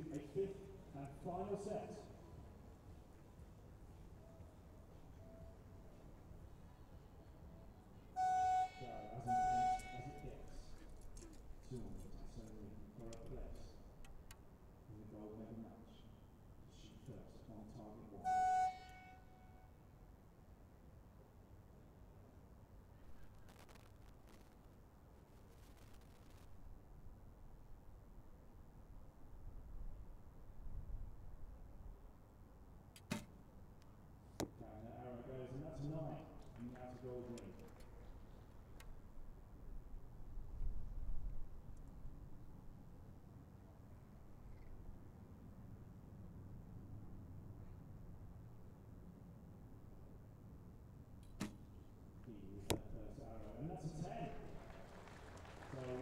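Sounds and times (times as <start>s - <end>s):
timing horn blasts: 8.2s - 10.4s, 18.2s - 19.8s
arrow striking target: 33.0s - 33.3s, 51.2s - 51.6s.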